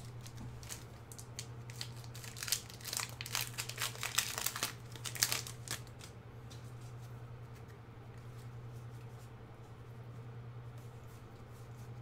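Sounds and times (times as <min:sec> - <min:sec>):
plastic wrapper crinkling: 0:00.0 - 0:06.1
low electrical hum: 0:00.0 - 0:12.0.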